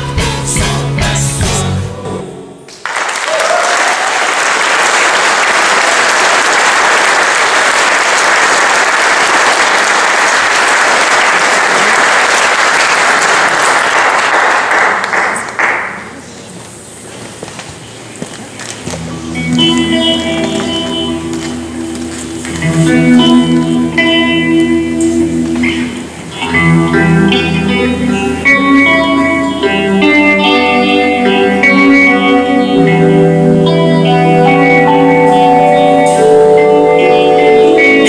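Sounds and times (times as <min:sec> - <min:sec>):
audience applause: 0:02.7 - 0:16.3
sustained instrumental notes: 0:19.0 - 0:38.0.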